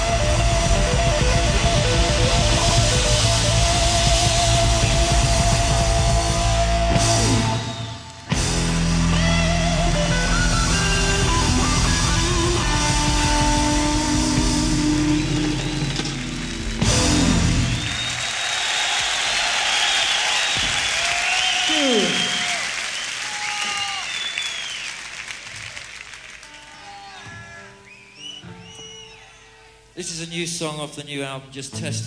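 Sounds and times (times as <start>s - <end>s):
audience whistling: 0.0s - 8.6s, 9.8s - 29.8s
rock band playing live: 0.0s - 18.2s
audience applauding: 14.1s - 29.4s
audience cheering: 14.1s - 29.6s.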